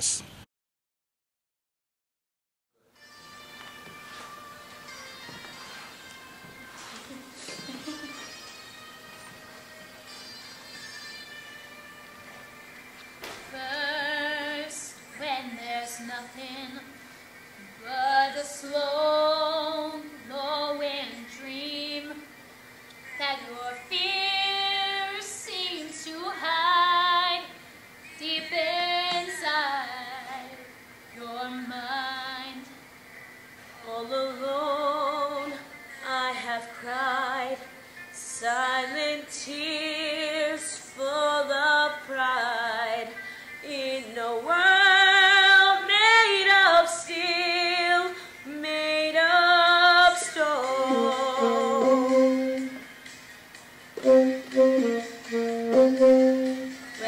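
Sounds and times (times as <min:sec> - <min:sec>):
young woman singing unaccompanied: 0:13.4 - 0:17.0, 0:17.6 - 0:22.3, 0:23.2 - 0:27.6, 0:28.2 - 0:32.8, 0:33.8 - 0:52.8
saxophone playing: 0:50.8 - 0:52.9, 0:54.0 - 0:57.0.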